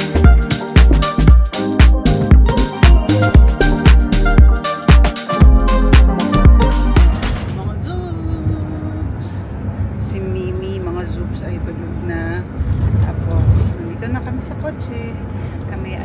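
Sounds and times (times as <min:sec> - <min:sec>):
car cabin road noise: 0:07.2 - 0:16.0
woman speaking: 0:07.5 - 0:16.0.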